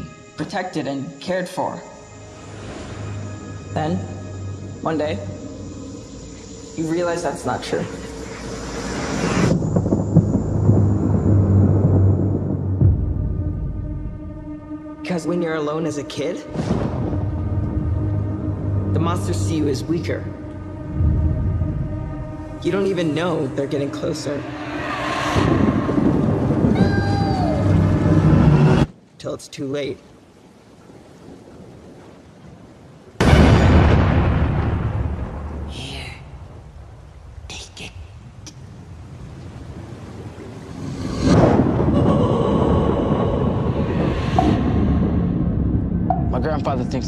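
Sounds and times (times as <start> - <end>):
rising noisy swell: 2.0 - 15.4, 16.7 - 28.9
deep thunder-like rumble: 3.1 - 28.9, 33.2 - 37.5, 38.2 - 47.0
low droning tone: 16.9 - 28.9
rain falling on wet street: 28.8 - 41.2.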